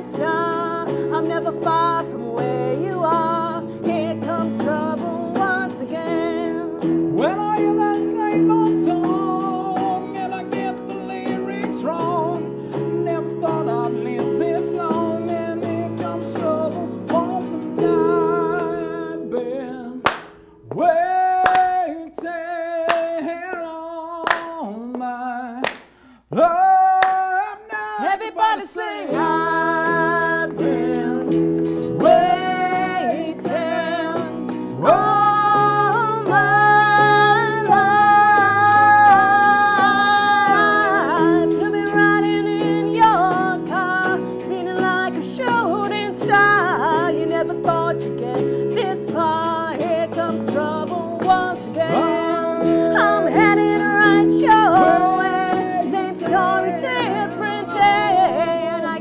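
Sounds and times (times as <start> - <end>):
electric guitar: 0.0 - 22.0, 28.0 - 59.0
keyboard: 0.0 - 23.7, 26.6 - 59.0
person singing with vibrato: 0.0 - 59.0.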